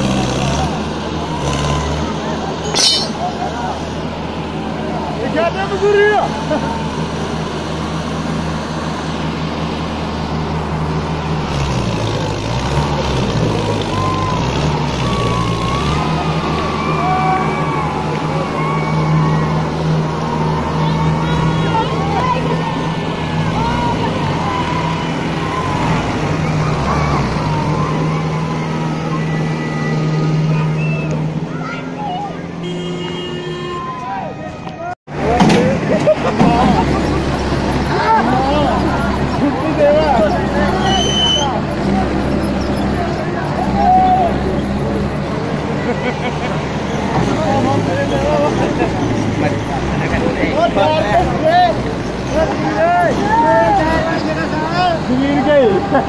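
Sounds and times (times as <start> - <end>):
onlookers calling out: 0.0 - 8.1, 12.4 - 56.0
diesel tractor engines running: 0.0 - 56.0.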